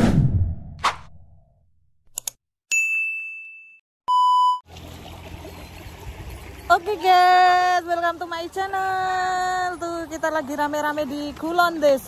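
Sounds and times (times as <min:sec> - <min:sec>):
bell-like ding: 0:02.7 - 0:03.8
short steady beep: 0:04.1 - 0:04.6.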